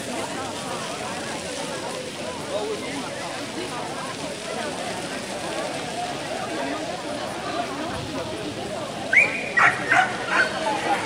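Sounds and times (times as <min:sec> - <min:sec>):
dog barking: 0:09.6 - 0:10.5.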